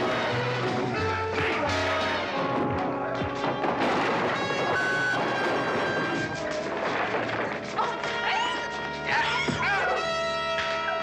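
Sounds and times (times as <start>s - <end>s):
fight scene music: 0.0s - 11.0s
crash: 3.3s - 7.8s.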